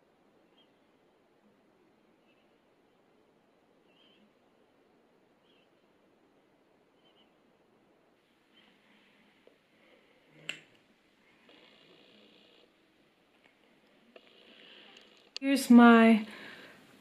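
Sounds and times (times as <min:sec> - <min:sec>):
faint high chirps: 0:03.8 - 0:04.5, 0:05.4 - 0:05.9, 0:06.9 - 0:07.6.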